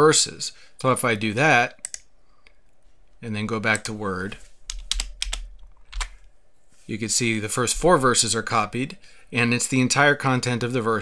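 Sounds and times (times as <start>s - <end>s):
keyboard keys clicking: 4.7s - 6.2s.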